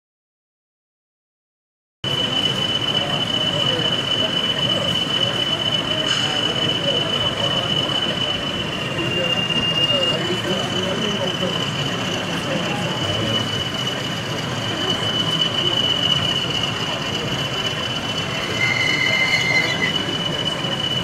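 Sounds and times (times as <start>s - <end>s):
crowd murmur: 2.1s - 21.0s
model locomotive whine: 2.1s - 21.0s.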